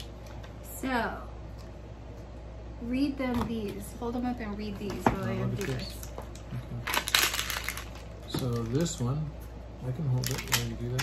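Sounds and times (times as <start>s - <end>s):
plastic packaging crinkling: 5.4s - 9.2s, 10.1s - 11.0s.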